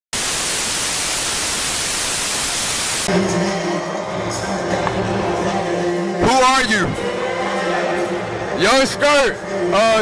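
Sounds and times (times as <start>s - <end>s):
tv static hiss: 0.1s - 3.1s.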